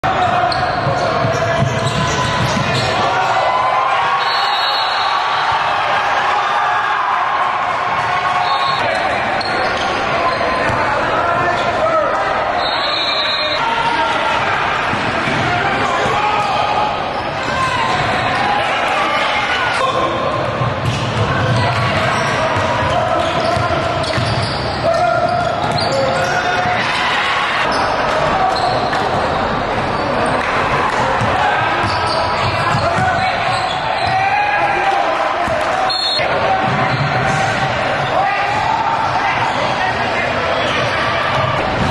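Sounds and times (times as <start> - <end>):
echoing chatter of people: 0.0 - 41.9.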